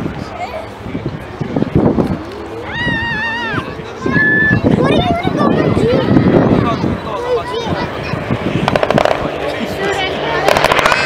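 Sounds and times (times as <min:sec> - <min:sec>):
people's voices: 0:00.0 - 0:11.0.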